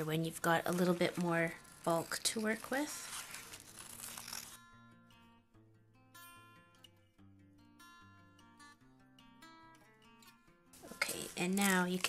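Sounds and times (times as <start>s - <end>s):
scissors cutting taped napkin: 0.0s - 4.6s, 10.9s - 12.0s
soft acoustic guitar music: 0.0s - 12.0s.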